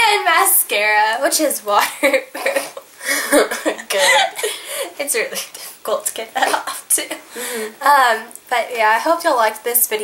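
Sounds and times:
young woman laughing: 0:01.8 - 0:05.6, 0:06.3 - 0:07.7
young woman coughing: 0:02.5 - 0:04.6.

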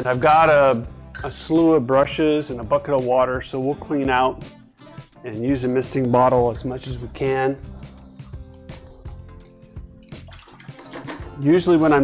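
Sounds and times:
quiet background music: 0:00.0 - 0:12.0
water sloshing in a bucket: 0:06.8 - 0:11.4.

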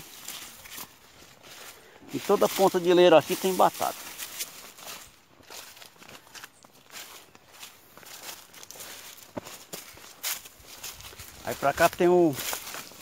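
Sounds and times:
footsteps through dry leaves: 0:00.0 - 0:13.0.

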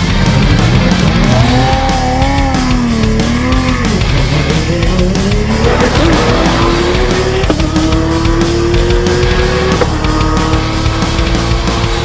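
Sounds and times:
race car engine accelerating: 0:00.0 - 0:12.0
rock music: 0:00.0 - 0:12.0.

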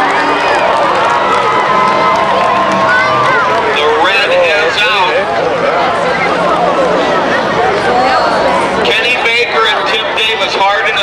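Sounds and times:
crowd noise: 0:00.0 - 0:11.0
vehicle noise: 0:00.0 - 0:11.0
man commentating: 0:03.7 - 0:05.3, 0:08.8 - 0:11.0.

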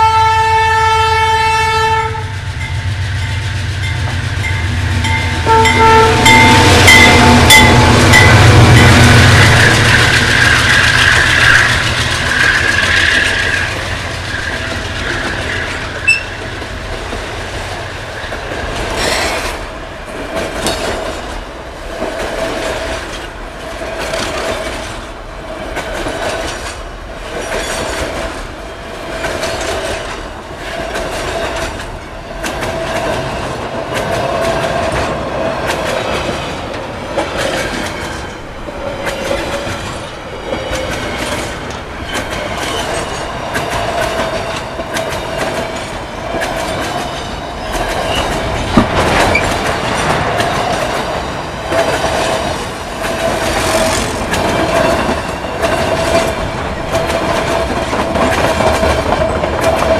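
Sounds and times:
wheels clicking over rail joints: 0:04.0 - 0:59.9
high wheel squeal: 0:05.7 - 0:16.5.

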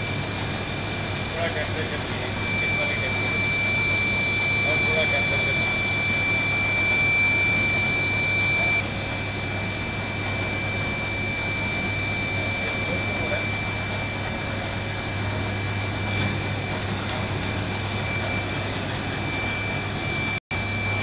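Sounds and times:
sealing machine blower whine: 0:00.0 - 0:21.0.

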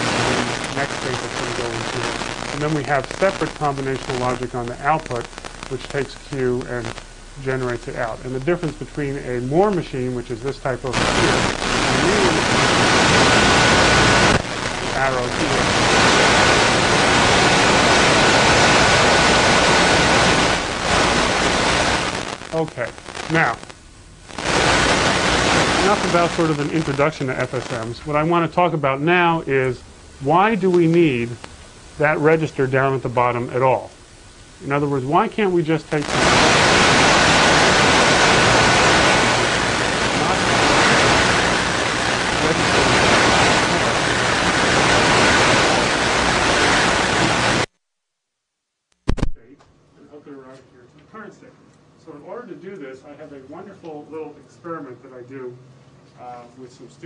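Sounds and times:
loud static hiss: 0:00.0 - 0:47.8, 0:49.0 - 0:57.0.

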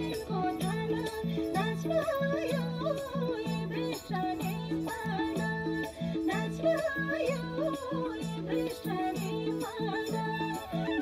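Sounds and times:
folk dance music: 0:00.0 - 0:11.0.

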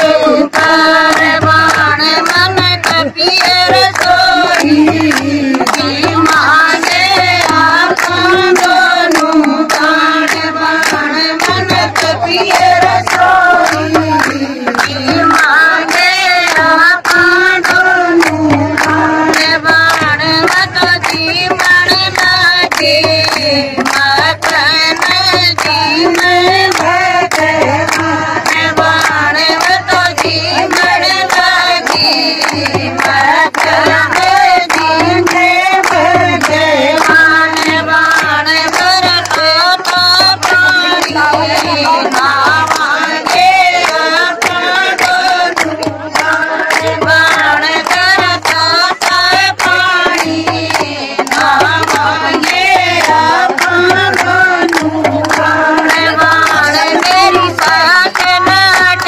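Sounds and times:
rhythmic hand claps: 0:00.0 - 0:59.0
women singing in unison: 0:00.0 - 0:59.0.

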